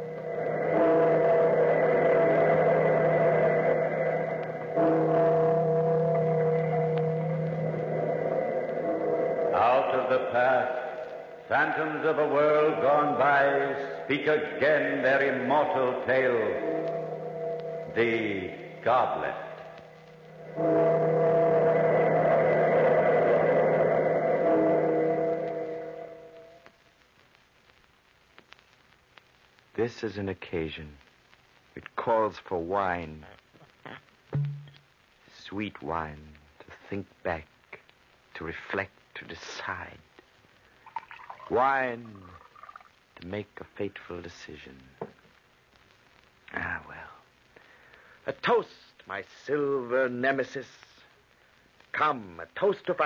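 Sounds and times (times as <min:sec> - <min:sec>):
deep bell tolling: 0:00.0 - 0:10.3, 0:16.0 - 0:26.4
sustained musical chord: 0:00.0 - 0:13.8, 0:14.8 - 0:26.6
rushing noise: 0:00.0 - 0:26.6.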